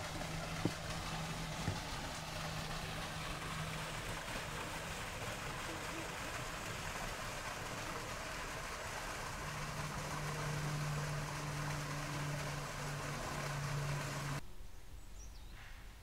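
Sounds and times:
low engine-like hum: 0:00.0 - 0:14.4.

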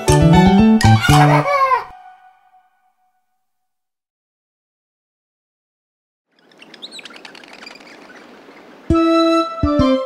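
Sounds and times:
small birds chirping: 0:06.3 - 0:09.3
soft outdoor background: 0:06.3 - 0:10.0.

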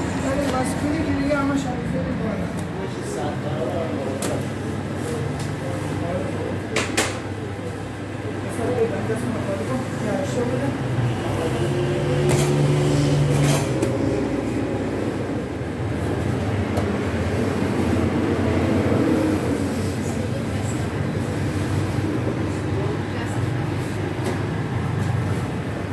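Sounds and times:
oven burner and blower humming: 0:00.0 - 0:25.9.

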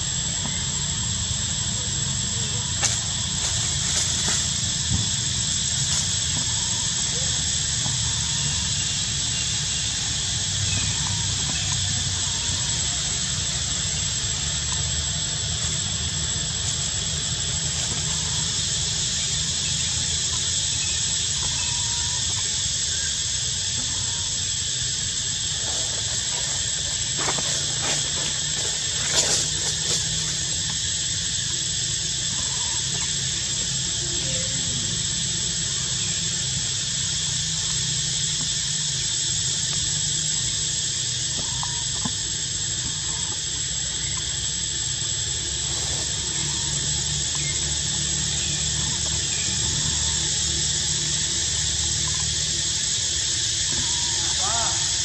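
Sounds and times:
high-pitched insect chorus: 0:00.0 - 0:55.0
low constant rumble: 0:00.0 - 0:55.0.

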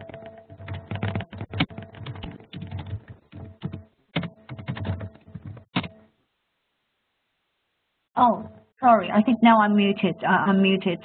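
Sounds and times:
keyboard typing: 0:00.0 - 0:06.0.

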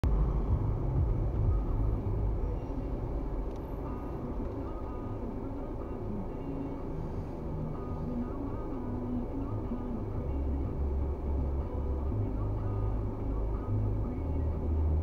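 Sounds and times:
car engine and road rumble: 0:00.0 - 0:15.0.

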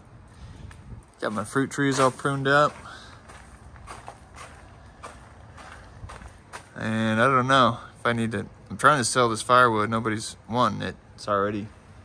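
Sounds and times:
faint footsteps on gravel: 0:00.4 - 0:07.8.

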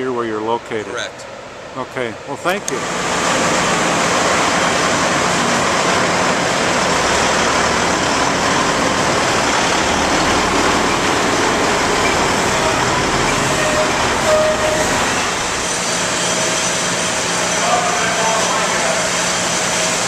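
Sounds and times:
loud steady broadband noise: 0:00.0 - 0:20.0
truck diesel engine running: 0:02.8 - 0:20.0.

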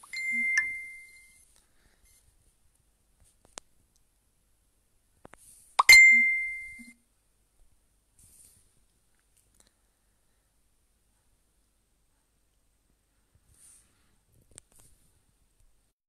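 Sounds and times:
short electronic dings: 0:00.0 - 0:01.4, 0:05.8 - 0:07.0.

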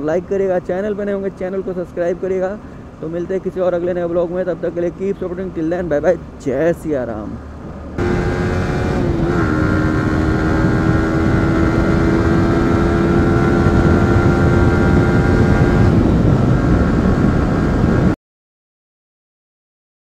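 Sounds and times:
wind rumble: 0:05.7 - 0:18.2
motorcycle engine at speed: 0:07.6 - 0:18.2.

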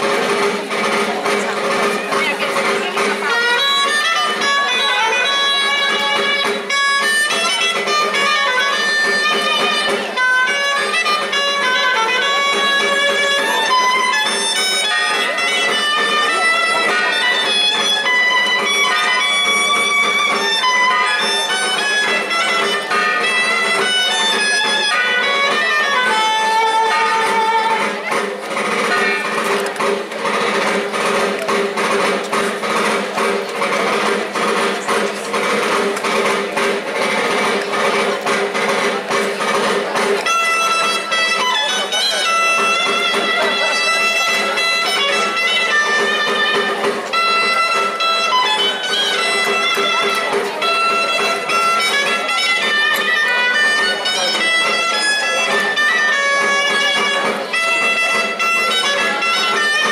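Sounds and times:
fast even clicking rhythm: 0:00.0 - 0:59.9
reed melody: 0:00.0 - 0:59.9.

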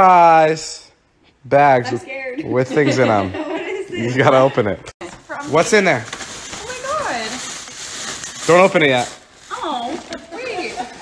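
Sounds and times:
tissue paper and gift bag rustling: 0:05.0 - 0:11.0.

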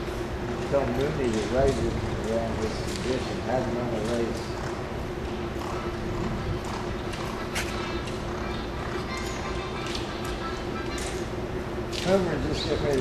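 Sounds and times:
steady low hum: 0:00.0 - 0:13.0
murmur of voices: 0:00.7 - 0:13.0.

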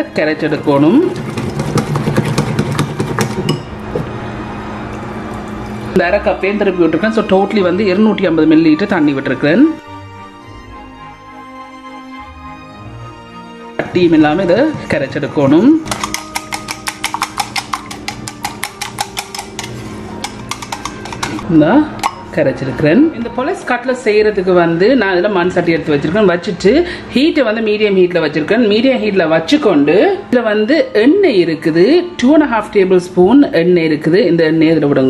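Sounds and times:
whisk clicking against bowl: 0:15.9 - 0:21.4.

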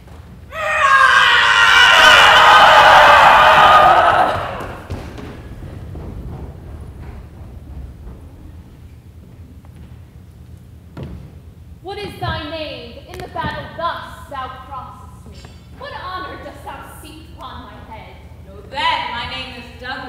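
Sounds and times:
battle cry from several voices: 0:00.7 - 0:04.9
running feet thuds: 0:02.2 - 0:12.4.

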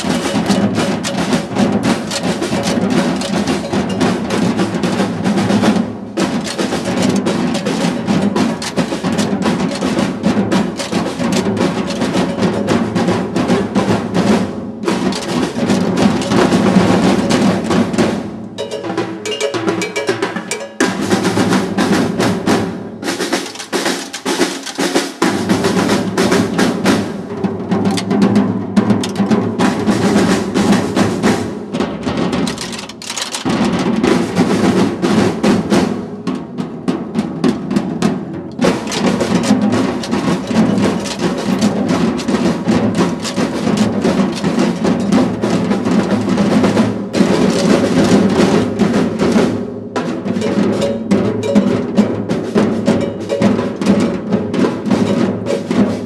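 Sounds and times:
drums played with sticks: 0:00.0 - 0:56.0.

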